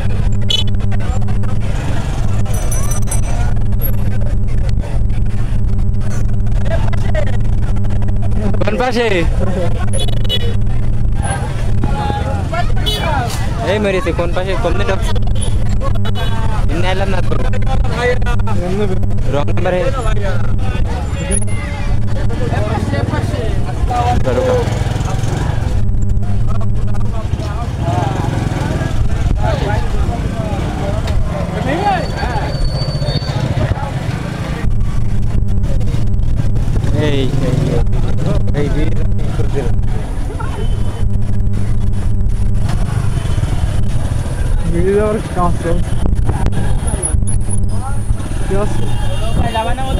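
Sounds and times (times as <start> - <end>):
crowd chatter: 0.0 - 49.9
motorcycle engine humming: 0.0 - 49.9
road and wind noise: 0.0 - 49.9.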